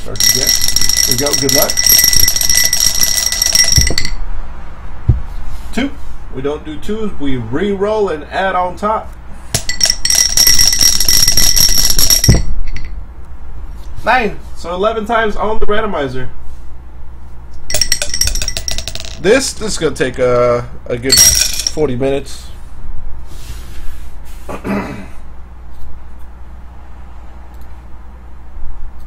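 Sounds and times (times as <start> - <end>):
die rattling in a cup: 0.0 - 4.2, 9.6 - 12.9, 17.7 - 19.2
high ringing: 0.0 - 4.3, 9.5 - 13.1, 17.6 - 19.4, 21.1 - 22.0
steady low hum: 0.0 - 29.0
man clearing throat: 24.5 - 25.2.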